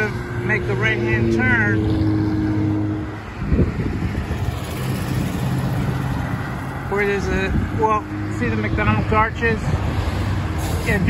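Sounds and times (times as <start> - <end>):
cars passing on road: 0.0 - 11.0
wind on microphone: 0.0 - 11.0.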